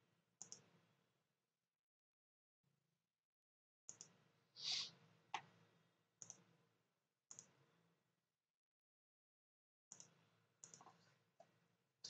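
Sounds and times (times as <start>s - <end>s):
computer mouse clicks: 0.4s - 0.7s, 3.9s - 4.2s, 6.2s - 6.4s, 7.3s - 7.6s, 9.9s - 11.6s.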